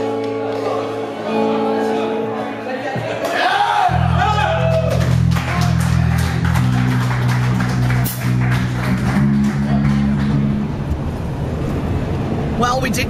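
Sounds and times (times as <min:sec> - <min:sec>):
electric guitar: 0:00.0 - 0:12.2
electric bass: 0:03.9 - 0:13.0.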